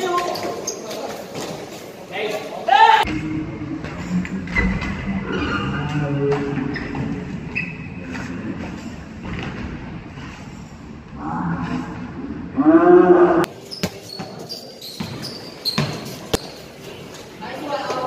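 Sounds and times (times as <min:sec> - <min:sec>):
basketball bouncing on court floor: 0:13.7 - 0:14.4, 0:15.0 - 0:16.5.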